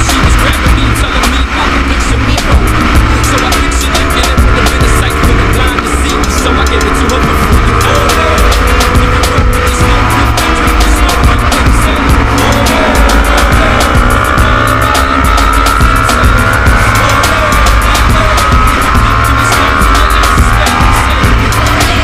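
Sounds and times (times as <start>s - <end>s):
motorcycle engine running at speed: 0.0s - 22.0s
music with heavy bass beat: 0.0s - 22.0s.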